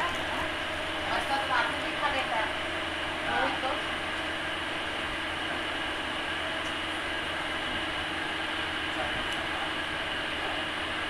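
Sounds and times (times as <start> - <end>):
air cooler fan whooshing: 0.0 - 11.0.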